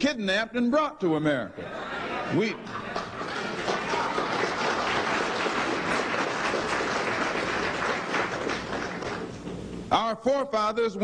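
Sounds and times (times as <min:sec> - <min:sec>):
audience applauding: 0:02.0 - 0:09.6.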